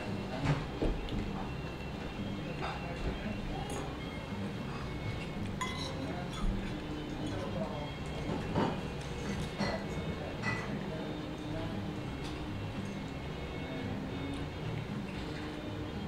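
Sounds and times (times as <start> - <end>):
cutlery clinking on a plate: 5.1 - 10.9.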